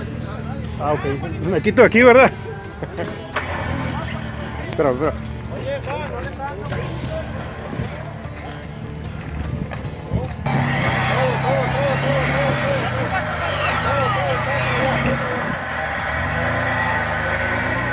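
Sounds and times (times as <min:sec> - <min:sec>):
voices and laughter: 0:00.1 - 0:08.9, 0:09.9 - 0:16.3
engine running at low revs: 0:02.4 - 0:17.9.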